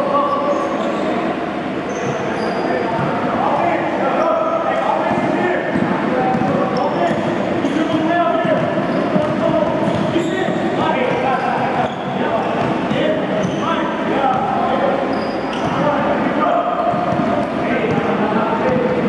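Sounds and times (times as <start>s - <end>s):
voices talking: 0.0s - 19.0s
basketball dribbling on hardwood: 7.9s - 10.7s.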